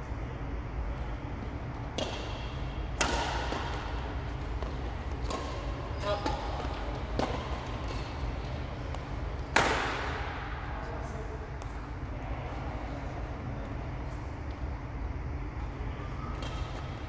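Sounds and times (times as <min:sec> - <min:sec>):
rackets hitting shuttlecock: 0:01.9 - 0:10.6, 0:16.3 - 0:17.0.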